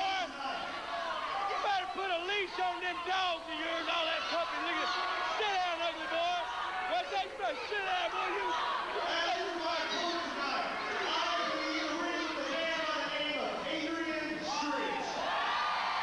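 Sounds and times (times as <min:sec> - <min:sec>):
man speaking over loudspeakers: 0:00.0 - 0:00.8, 0:01.4 - 0:15.3.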